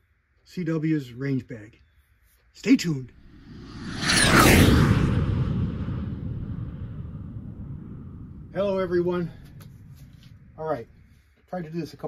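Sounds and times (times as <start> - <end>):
whoosh with falling sweep: 3.2 - 11.1.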